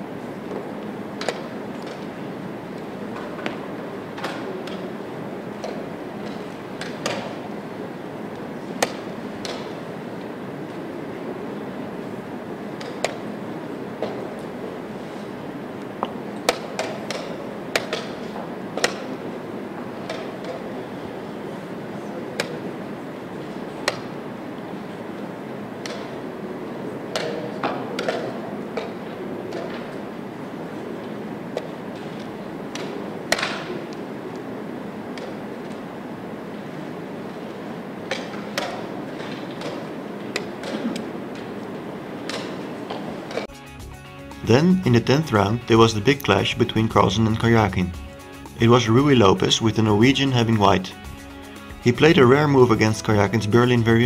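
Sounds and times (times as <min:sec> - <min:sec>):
murmur of room noise: 0:00.0 - 0:54.0.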